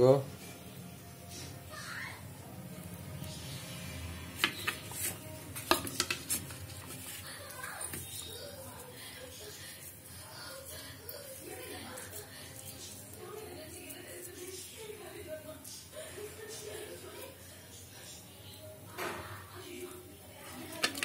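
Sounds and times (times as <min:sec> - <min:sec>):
ceramic plates clinking: 0:20.7 - 0:21.0.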